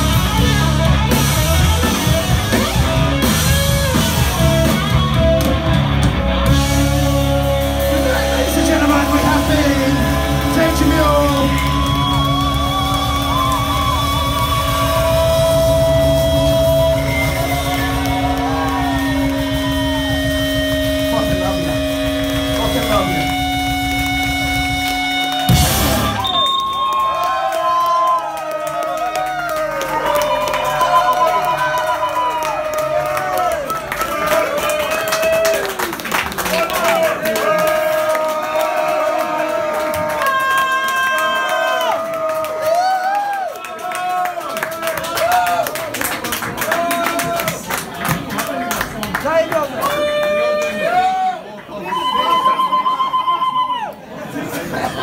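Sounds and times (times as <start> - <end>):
live rock band playing: 0.0 - 26.4
audience whooping and cheering: 0.0 - 55.0.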